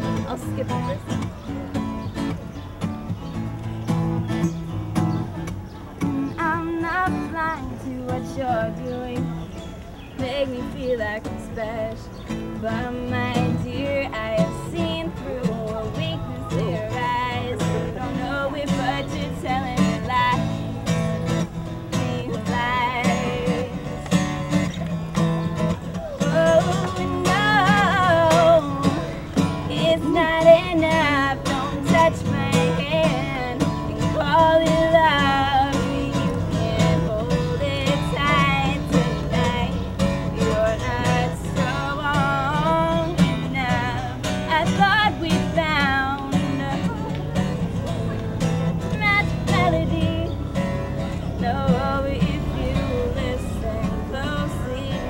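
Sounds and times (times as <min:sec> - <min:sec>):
woman singing: 0:00.0 - 0:02.4, 0:05.9 - 0:24.9, 0:25.6 - 0:55.0
strummed acoustic guitar: 0:00.0 - 0:55.0.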